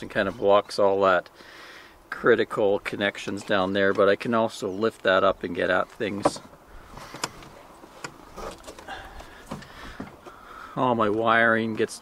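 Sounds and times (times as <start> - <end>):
low background noise: 0.0 - 12.0
light clicks and knocks of gear: 4.9 - 10.4.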